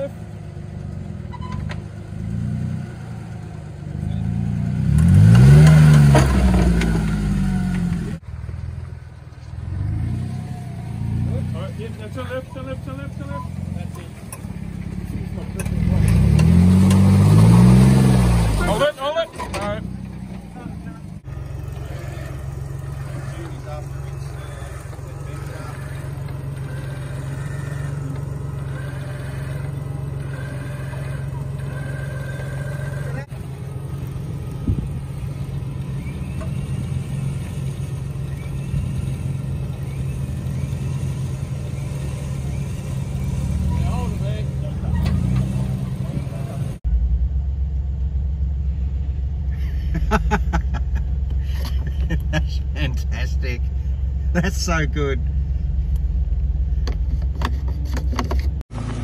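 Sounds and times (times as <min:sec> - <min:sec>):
car engine revving: 0:00.0 - 0:59.0.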